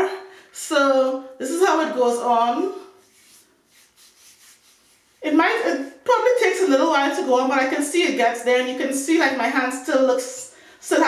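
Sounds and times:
hand rubbing skin: 0:02.9 - 0:06.0.

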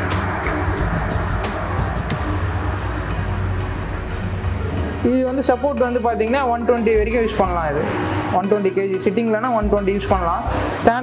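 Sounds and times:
cross trainer whirring rumble: 0:00.0 - 0:11.0.

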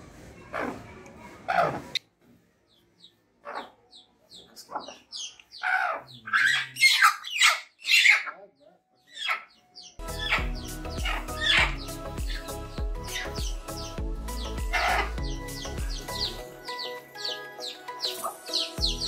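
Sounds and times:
hen squawking: 0:04.7 - 0:08.4, 0:09.1 - 0:13.9, 0:14.5 - 0:16.4
music: 0:10.0 - 0:19.0.

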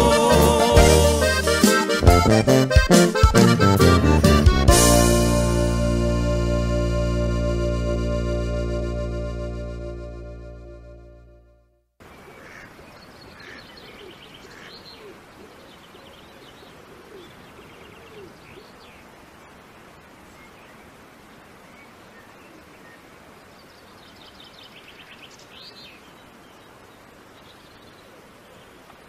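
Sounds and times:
outdoor ambience hiss: 0:00.0 - 0:10.8, 0:12.0 - 0:29.0
birds chirping and trilling: 0:12.1 - 0:19.1.

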